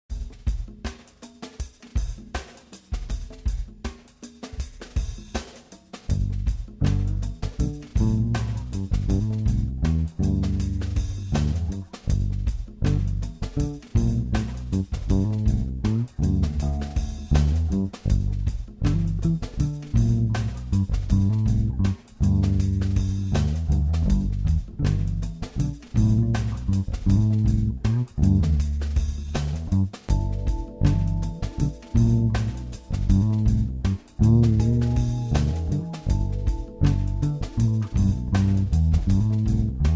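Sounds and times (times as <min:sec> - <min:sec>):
drum kit beat: 0:00.0 - 0:39.9
electric bass guitar: 0:06.1 - 0:39.9.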